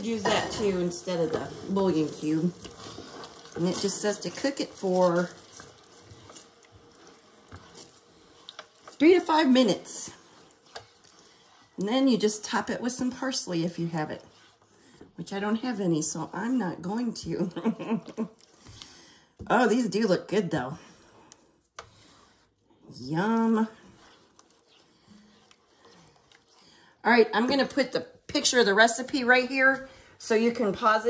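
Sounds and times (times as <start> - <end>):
spatula stirring thick sauce in pot: 0.0 - 31.0.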